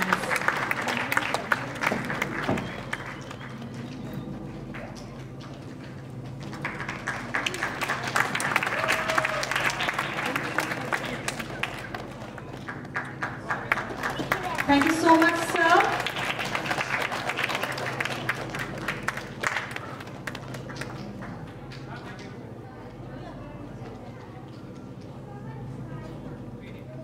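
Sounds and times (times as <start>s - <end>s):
audience applauding: 0.0s - 22.4s.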